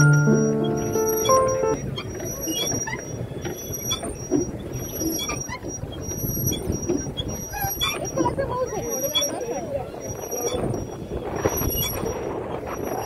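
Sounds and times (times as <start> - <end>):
background music: 0.0 - 1.8
short high squeaks: 0.0 - 8.1.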